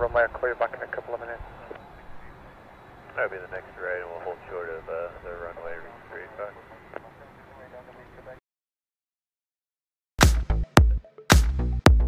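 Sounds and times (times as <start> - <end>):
radio voice: 0.0 - 2.4, 3.1 - 8.4.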